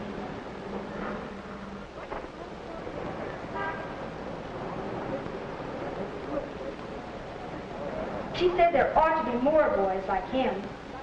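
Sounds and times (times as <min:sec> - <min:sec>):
city street traffic: 0:00.0 - 0:08.4.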